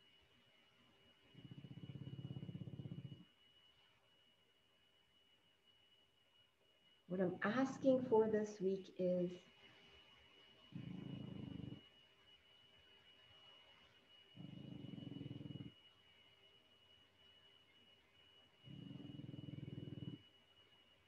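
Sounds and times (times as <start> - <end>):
faint high whine: 0.0 - 21.0
dog snoring: 1.2 - 3.4, 10.7 - 12.0, 14.4 - 15.8, 18.6 - 20.3.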